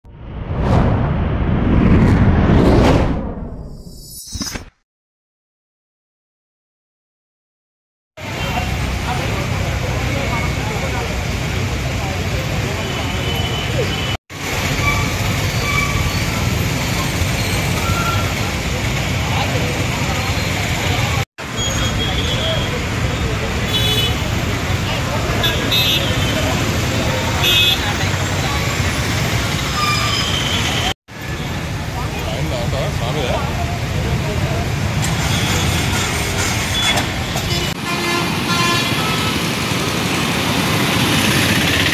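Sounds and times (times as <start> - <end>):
people's voices: 8.2 - 14.1
steady traffic noise: 8.2 - 41.9
vehicle horn toots: 37.4 - 39.4.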